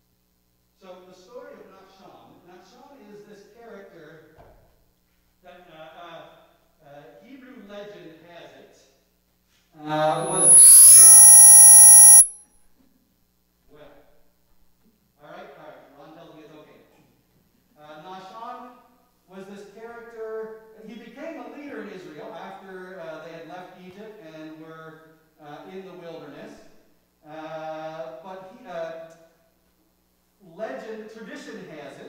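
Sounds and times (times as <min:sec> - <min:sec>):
loud electronic buzz with high whine: 0:10.2 - 0:12.3.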